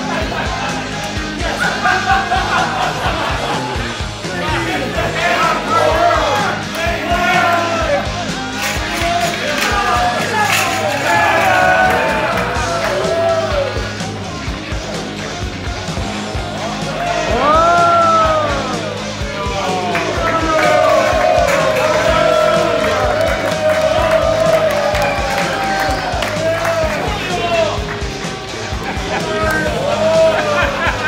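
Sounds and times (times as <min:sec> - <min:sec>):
crowd yelling and cheering: 0:00.0 - 0:31.0
loud rock music: 0:00.0 - 0:31.0.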